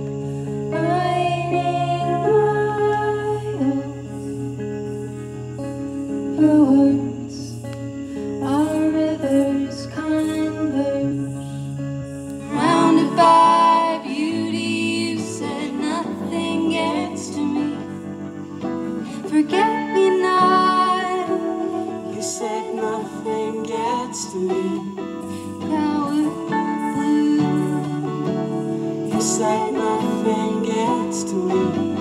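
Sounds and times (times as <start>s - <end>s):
woman singing: 0.0s - 4.7s, 6.1s - 32.0s
electric and acoustic guitars: 0.0s - 32.0s.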